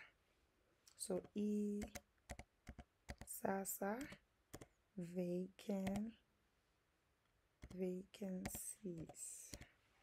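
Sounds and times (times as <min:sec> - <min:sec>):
computer keyboard clicks: 0:01.8 - 0:03.3, 0:05.8 - 0:06.0.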